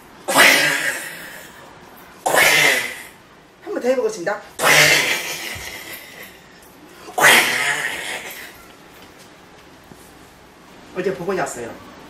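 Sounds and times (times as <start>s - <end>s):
woman's hissing growl: 0.3s - 1.6s, 2.2s - 3.2s, 4.6s - 6.3s, 7.1s - 8.6s.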